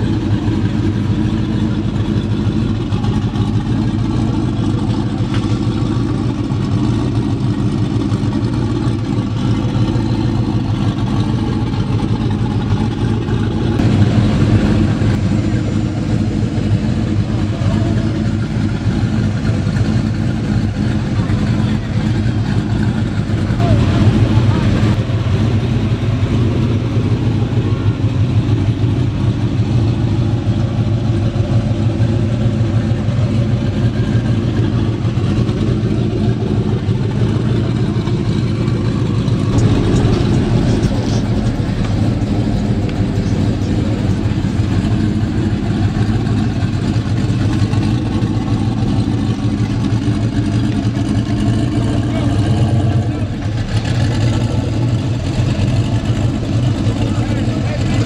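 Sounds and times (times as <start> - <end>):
car engine idling: 0.0 - 58.0
people talking: 13.8 - 29.7, 32.3 - 58.0.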